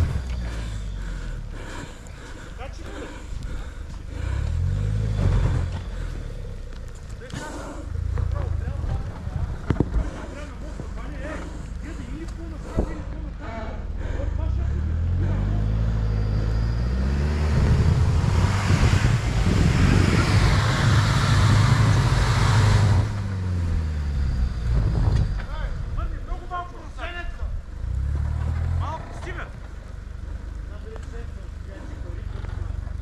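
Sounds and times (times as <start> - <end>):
suv engine revving hard: 4.1 - 6.5, 14.3 - 25.2.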